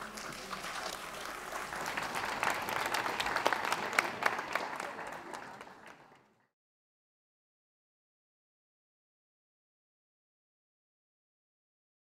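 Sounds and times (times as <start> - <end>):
audience applauding: 0.0 - 6.4.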